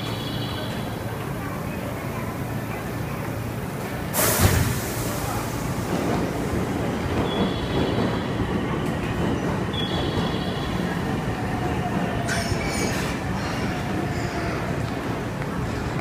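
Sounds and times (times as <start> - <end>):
electric train rumbling: 0.0 - 16.0.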